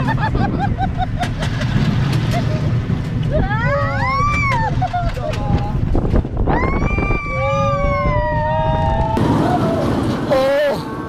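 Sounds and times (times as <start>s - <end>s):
wind buffeting microphone: 0.0s - 10.3s
roller coaster rumbling on track: 0.0s - 11.0s.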